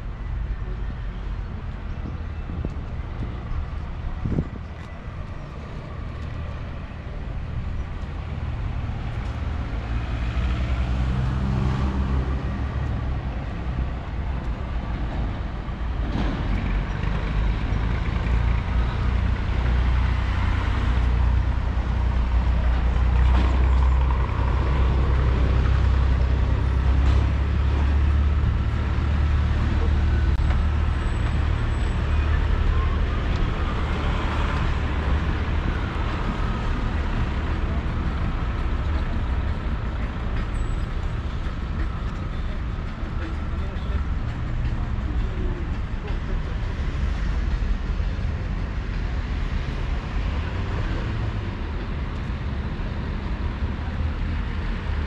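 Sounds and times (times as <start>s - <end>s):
engine rumble of passing vehicles: 0.0s - 55.0s
steady hum of traffic: 0.0s - 55.0s.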